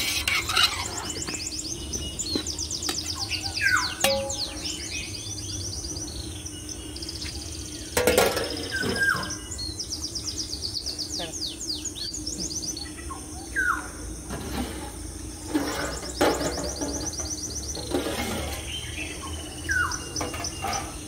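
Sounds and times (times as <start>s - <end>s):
songbirds chirping: 0.0s - 21.0s
metallic knocks: 4.0s - 4.8s.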